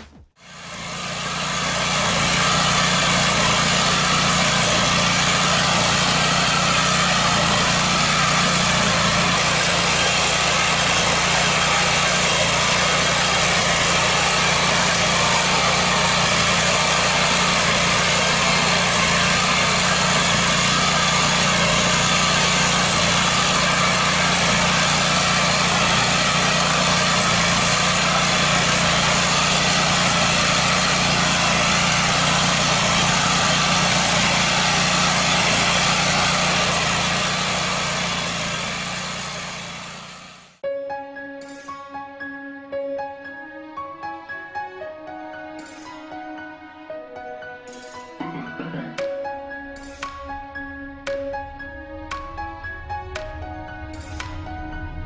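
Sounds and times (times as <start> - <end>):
small engine running: 0.0 - 40.6, 41.4 - 42.1, 44.0 - 46.6, 47.2 - 55.0.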